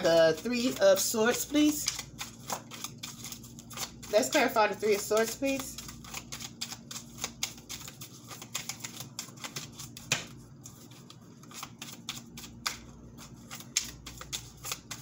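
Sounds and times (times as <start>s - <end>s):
cards shuffled by hand: 0.0s - 15.0s.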